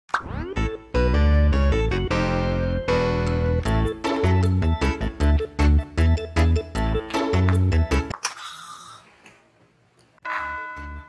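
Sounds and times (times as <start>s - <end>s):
cheerful keyboard music: 0.2s - 8.1s.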